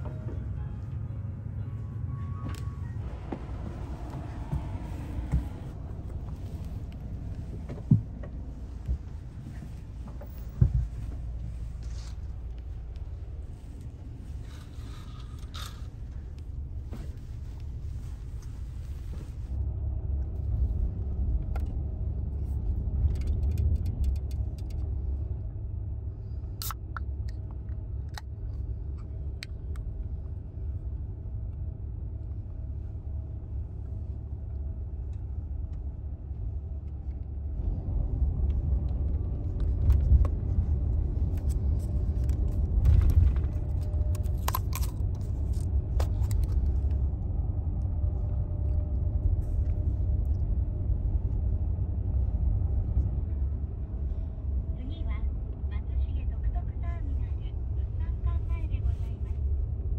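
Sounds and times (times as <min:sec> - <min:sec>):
bus rumble from inside: 0:00.0 - 0:59.9.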